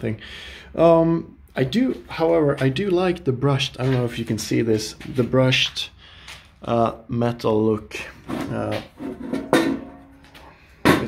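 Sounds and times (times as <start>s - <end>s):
sharp metal clank: 9.3s - 11.0s.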